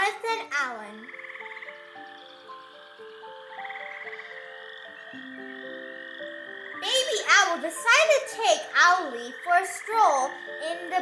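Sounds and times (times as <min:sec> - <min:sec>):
night creatures trilling: 0:00.0 - 0:11.0
soft slow background music: 0:00.0 - 0:11.0.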